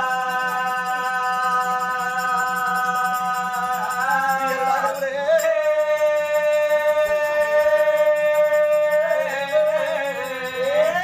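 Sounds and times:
person singing through microphone: 0.0 - 11.0.

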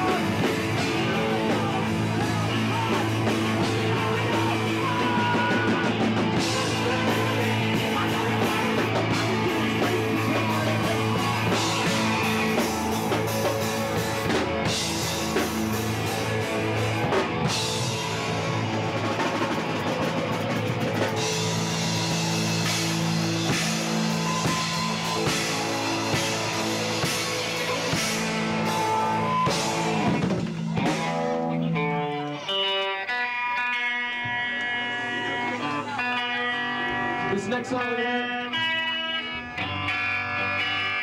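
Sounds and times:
rock band playing live: 0.0 - 41.0.

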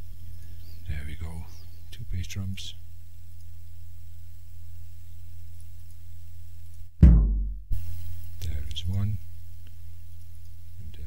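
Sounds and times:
kick drum thud: 7.0 - 7.8.

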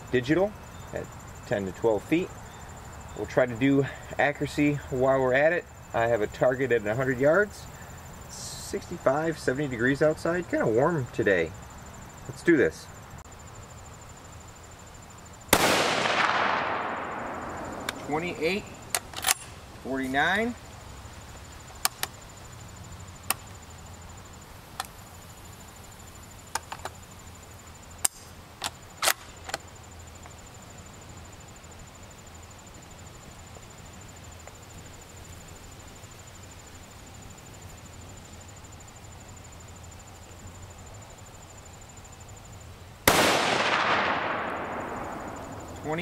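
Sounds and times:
rifle shot echoing: 15.5 - 19.0, 43.1 - 46.0
rifle handling clicks and knocks: 17.8 - 18.1, 18.9 - 19.6, 26.5 - 27.0.

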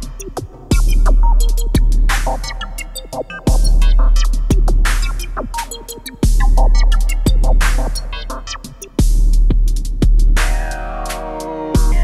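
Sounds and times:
electronic kick drums: 0.0 - 12.0
heavy bass: 0.0 - 12.0
hi-hat ticks: 0.0 - 12.0.

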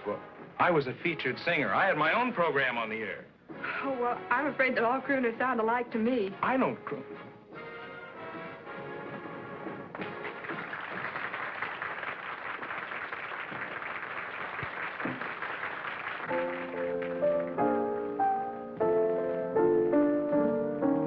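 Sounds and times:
piano chords: 16.3 - 21.0.

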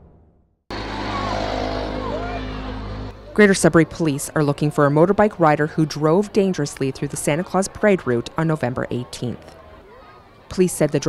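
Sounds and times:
logo whoosh: 0.7 - 3.3
dirt bike speeding past: 0.7 - 4.0
crowd noise: 0.7 - 11.0.

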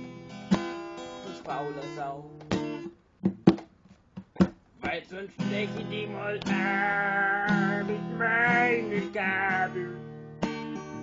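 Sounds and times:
person singing: 4.8 - 10.1.

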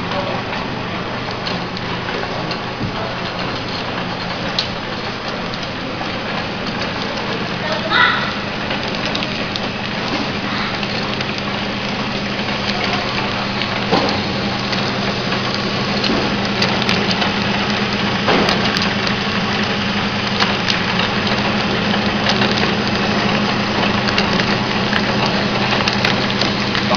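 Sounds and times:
mechanical clatter: 0.0 - 26.9
motor hum: 0.0 - 26.9
sharp mechanical knocks: 0.0 - 26.9.

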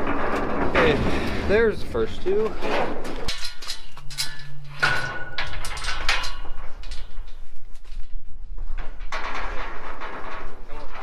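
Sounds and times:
metal gates rattling and clanking: 0.0 - 7.8, 8.6 - 11.0.

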